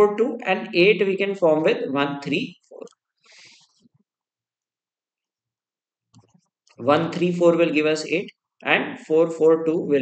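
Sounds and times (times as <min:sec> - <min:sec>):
person speaking: 0:06.3 - 0:10.0.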